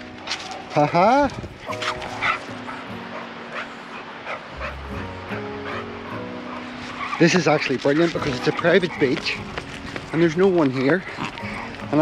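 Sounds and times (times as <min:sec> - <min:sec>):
background music: 0:00.0 - 0:12.0
dog yipping and whimpering: 0:01.6 - 0:09.1.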